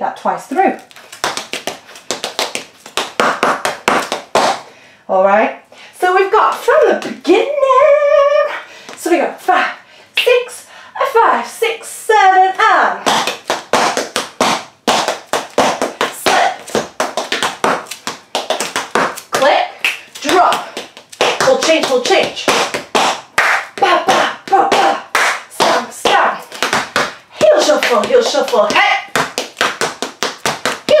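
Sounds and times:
woman counting in: 0.0 - 0.9, 5.1 - 13.2, 16.0 - 16.7, 19.3 - 22.6, 23.6 - 26.6, 27.3 - 29.2, 30.8 - 31.0
tap shoes on hard floor: 0.8 - 4.7, 13.0 - 31.0.

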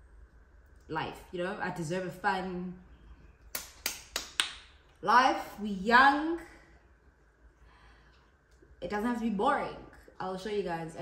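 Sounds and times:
finger snaps: 3.5 - 4.7.

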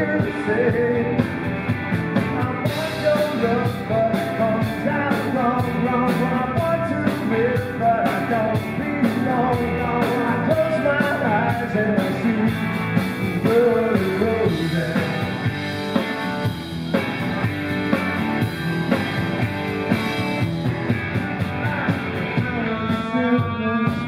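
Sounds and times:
bending guitar melody: 0.0 - 24.0
live rock band playing: 0.0 - 24.0.

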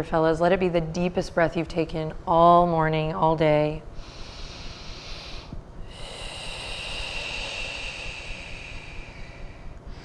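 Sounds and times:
breath out through nose: 4.0 - 10.0.

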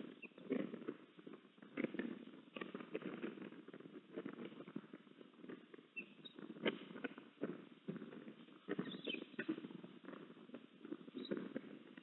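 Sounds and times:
crackling and rustling in nest: 0.0 - 12.0.

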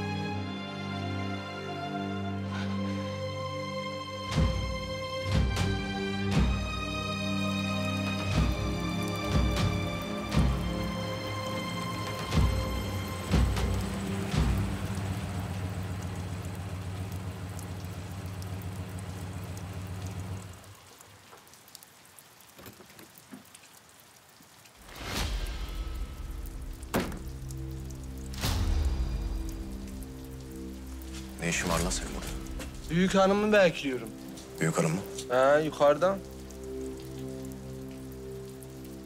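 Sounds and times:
low musical drone: 0.0 - 17.2
steady rain falling: 0.0 - 39.0
sharp knocks: 26.9 - 27.4.

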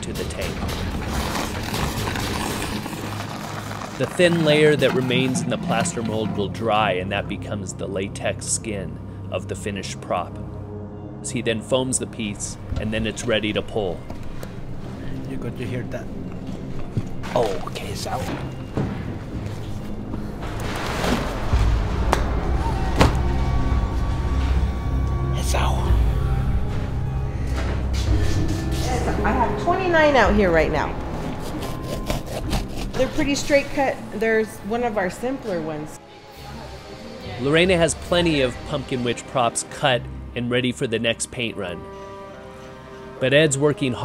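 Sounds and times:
background music: 0.0 - 44.0.

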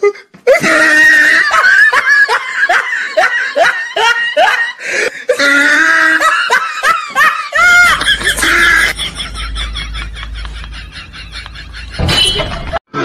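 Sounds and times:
loud human laughter: 0.5 - 13.0.

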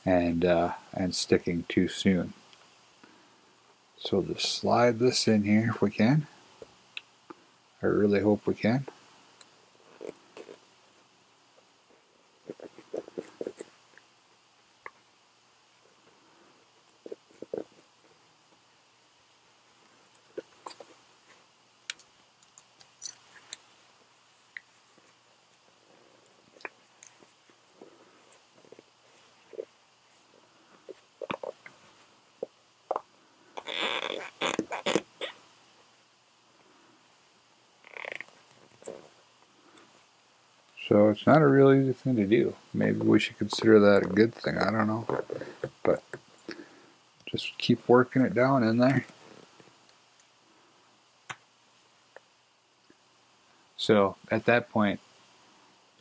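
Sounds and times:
headset handling rubs and scrapes: 12.4 - 13.8, 45.1 - 45.8.

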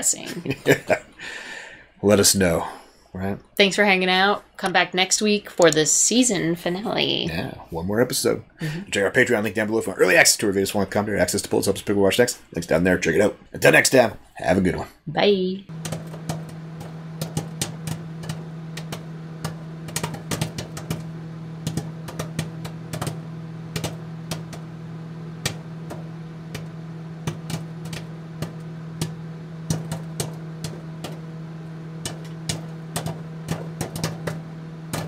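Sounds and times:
steady low hum: 0.0 - 4.6, 5.2 - 35.0
sharp clicks and ticks: 5.5 - 6.0, 15.7 - 35.0.

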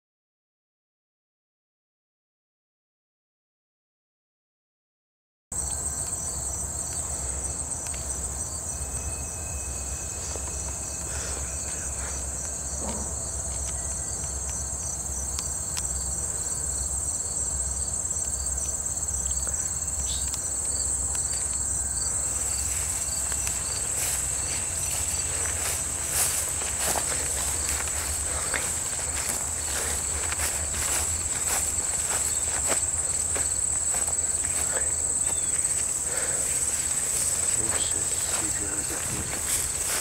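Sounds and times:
insects droning: 5.5 - 40.0
footsteps through long grass: 18.0 - 40.0
wind rumble on microphone: 38.9 - 40.0.

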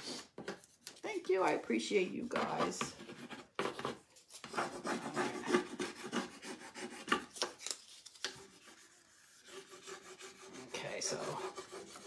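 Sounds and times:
burnishing tool scratching on wood: 2.4 - 7.5, 8.2 - 12.0.

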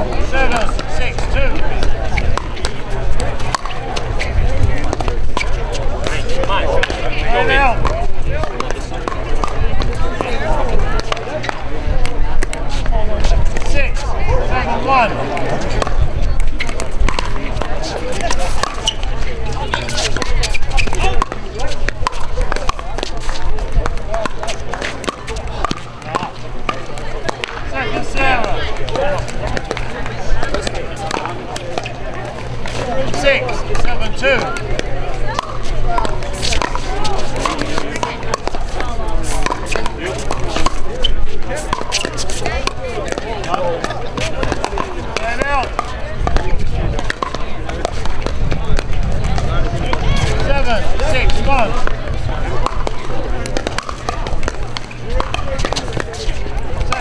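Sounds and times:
voices talking: 0.0 - 57.0
paddles hitting plastic ball: 0.2 - 4.1, 15.4 - 19.0, 19.6 - 27.6, 28.2 - 32.0, 32.6 - 57.0.

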